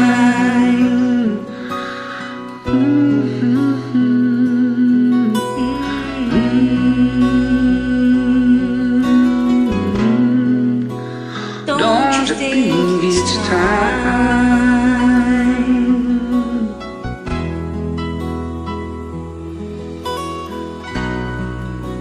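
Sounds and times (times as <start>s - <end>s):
voices singing long wordless notes: 0.0s - 17.0s
slow ballad backing track with guitar: 0.0s - 22.0s.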